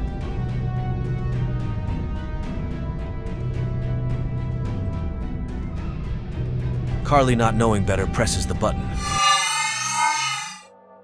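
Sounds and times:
bright ringing tone: 0:09.0 - 0:10.7.

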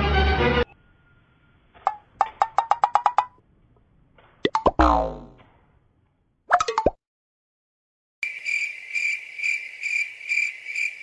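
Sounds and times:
cartoon pops: 0:04.4 - 0:05.4, 0:06.5 - 0:07.0
falling twang: 0:04.6 - 0:05.5.

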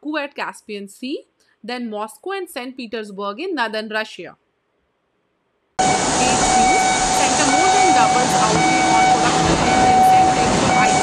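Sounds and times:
loud noisy din: 0:05.8 - 0:11.0.

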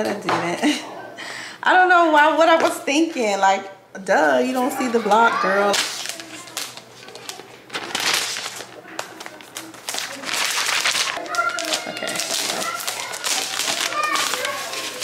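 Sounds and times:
faint voices: 0:04.1 - 0:15.0
packaging rustling and crinkling: 0:05.4 - 0:15.0.

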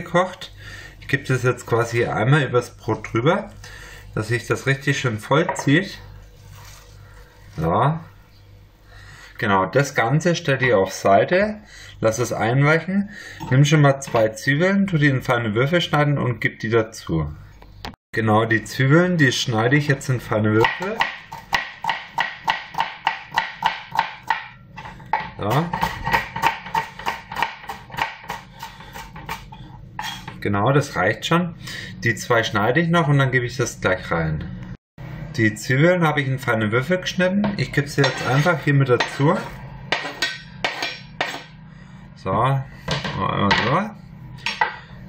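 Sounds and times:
knife chopping on plastic board: 0:20.6 - 0:24.5, 0:25.1 - 0:29.5, 0:39.9 - 0:41.5.

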